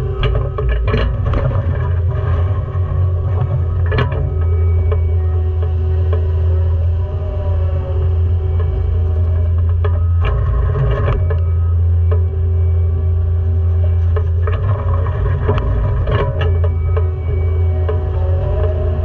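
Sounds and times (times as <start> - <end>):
diesel engine droning: 0.0 - 19.0
plucked-string background music: 0.0 - 19.0.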